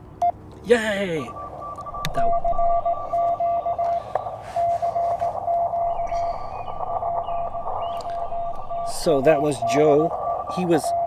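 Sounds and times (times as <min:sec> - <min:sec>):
receiver hiss: 0:00.0 - 0:11.0
morse code tone: 0:00.2 - 0:11.0
higher-pitched morse signal: 0:00.6 - 0:11.0.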